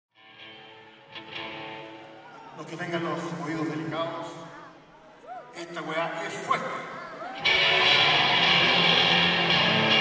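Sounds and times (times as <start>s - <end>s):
electric guitar through amplifier: 7.4s - 10.0s.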